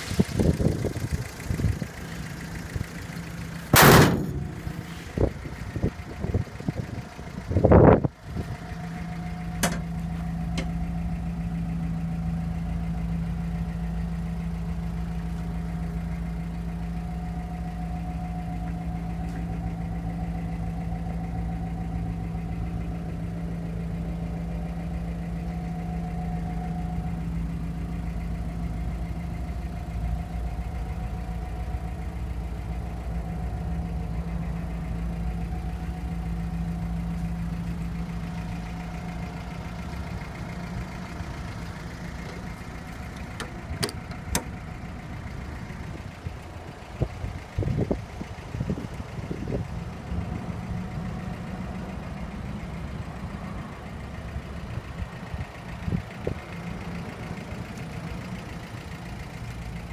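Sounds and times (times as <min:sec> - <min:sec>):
engine idling: 0:00.0 - 0:59.9.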